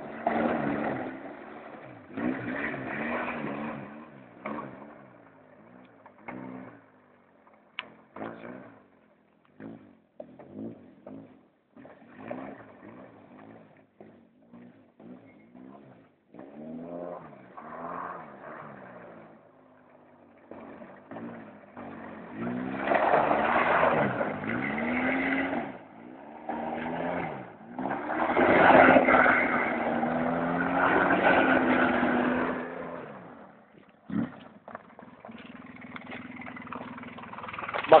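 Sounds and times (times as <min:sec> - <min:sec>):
engine revving: 0:00.0 - 0:07.0, 0:07.8 - 0:38.0.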